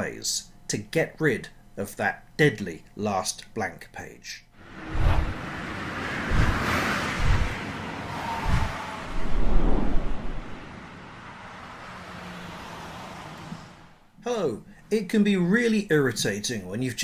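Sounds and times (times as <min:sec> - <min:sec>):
low rumble: 0:04.6 - 0:11.0
rushing whooshes: 0:04.6 - 0:11.4
deep booms: 0:06.3 - 0:07.6, 0:08.4 - 0:10.5.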